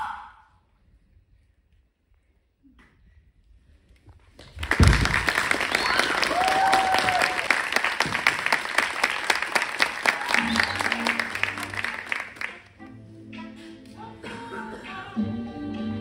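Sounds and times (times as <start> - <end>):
audience applauding and cheering: 4.5 - 12.8
long whoop: 6.0 - 7.5.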